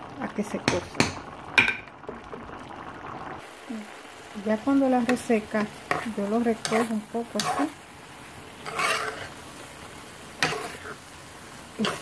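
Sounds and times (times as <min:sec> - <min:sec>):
faint steady sizzle: 0:00.0 - 0:12.0
metal spoon scraping rice in pot: 0:05.9 - 0:07.8, 0:08.6 - 0:09.4, 0:10.4 - 0:11.0.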